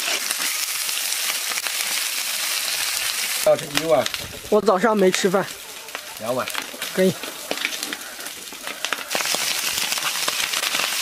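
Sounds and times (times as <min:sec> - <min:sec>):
rice crackling in a wok: 0:00.0 - 0:11.0
rice sizzling in hot oil: 0:00.0 - 0:11.0.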